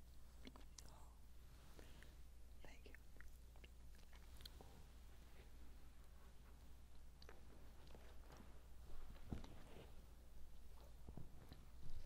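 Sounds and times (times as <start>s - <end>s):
faint clicks and rustles: 0.0s - 12.0s.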